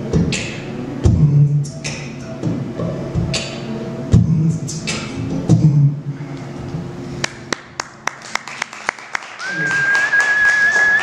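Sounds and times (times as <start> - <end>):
audience applause: 7.5 - 11.0
long whistle: 9.4 - 11.0.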